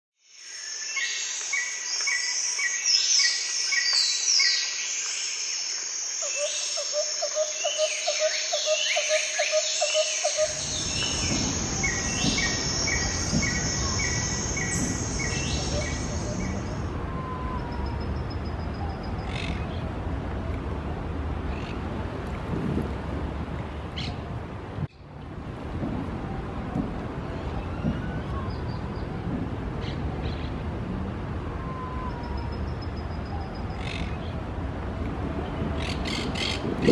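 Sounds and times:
steady low rumble: 10.4 - 31.6.

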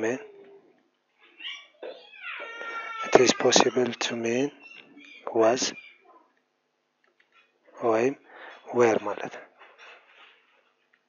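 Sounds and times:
cat meowing: 1.4 - 4.1.

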